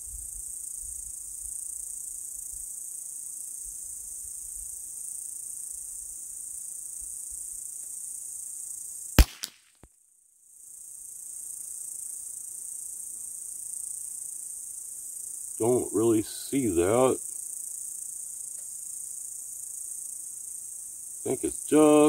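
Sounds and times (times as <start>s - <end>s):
rifle shot with echo: 9.2s - 9.6s.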